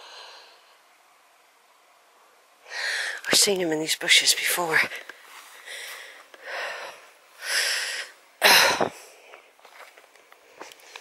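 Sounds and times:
person breathing: 0:00.0 - 0:00.9, 0:02.6 - 0:03.3, 0:05.4 - 0:09.6.

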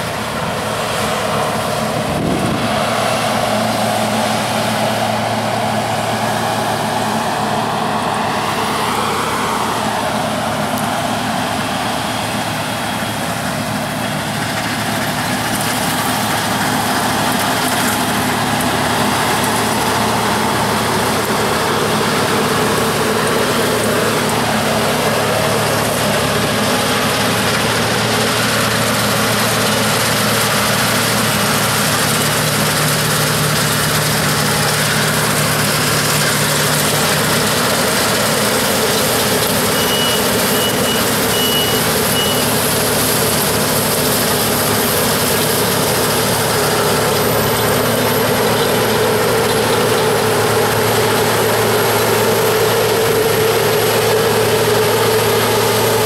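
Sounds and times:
diesel engine drone: 0:00.0 - 0:56.0
threshing machinery rushing: 0:00.0 - 0:56.0.

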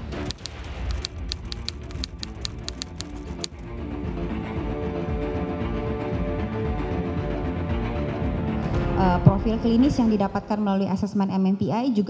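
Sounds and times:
typewriter key clicks: 0:00.0 - 0:03.6
low background music: 0:00.0 - 0:12.0.

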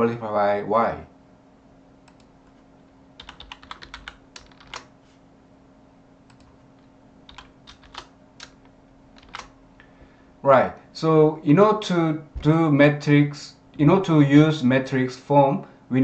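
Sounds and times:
faint steady hum: 0:00.0 - 0:16.0
typing on computer keyboard: 0:03.2 - 0:04.9, 0:06.3 - 0:06.5, 0:07.3 - 0:09.6.

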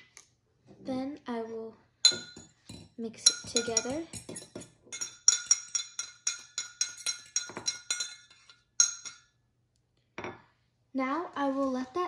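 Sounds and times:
fork clinking against glass cup: 0:02.1 - 0:09.3.

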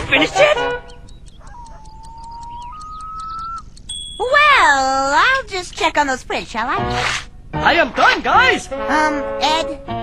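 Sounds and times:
faint ticking: 0:00.0 - 0:06.6
thin whistle-like tones: 0:00.9 - 0:04.2.

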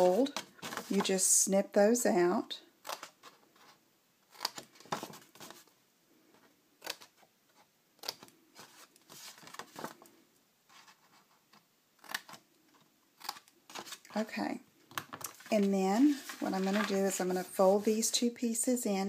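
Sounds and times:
small scissors snipping paper: 0:04.3 - 0:04.6, 0:12.0 - 0:12.4, 0:13.2 - 0:13.9.

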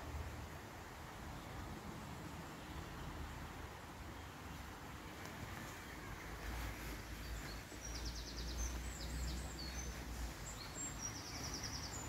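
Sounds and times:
outdoor hiss: 0:00.0 - 0:12.0
small birds chirping: 0:02.6 - 0:12.0.

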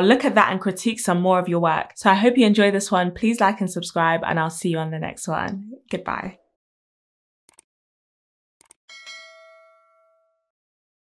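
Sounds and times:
bright bell ding: 0:08.9 - 0:10.5.

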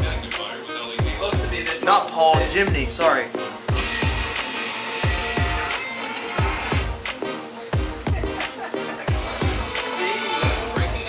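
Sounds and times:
electronic music: 0:00.0 - 0:11.0.

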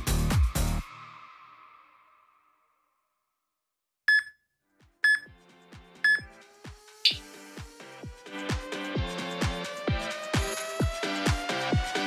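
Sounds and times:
high electronic beeps: 0:04.1 - 0:04.3, 0:05.1 - 0:05.3, 0:06.1 - 0:06.3
electronic dance beat: 0:07.1 - 0:07.3.

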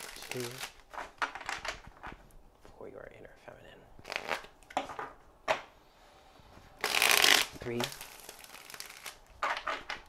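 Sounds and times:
cards rustling: 0:00.0 - 0:02.8, 0:06.7 - 0:10.0.

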